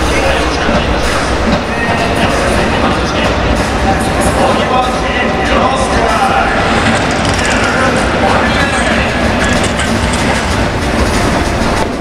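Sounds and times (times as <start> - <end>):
cheering section music: 0.0 - 12.0
crowd noise: 0.0 - 12.0.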